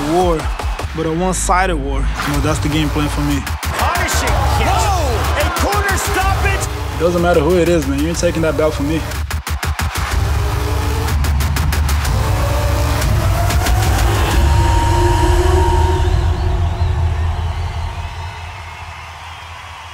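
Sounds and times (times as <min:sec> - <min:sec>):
electronic music with heavy bass: 0:00.0 - 0:19.9
rising sweep: 0:12.0 - 0:19.3.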